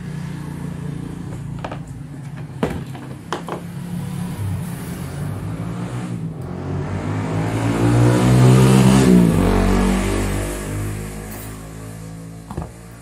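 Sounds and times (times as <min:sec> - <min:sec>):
passing vehicle engine: 0:03.6 - 0:13.0.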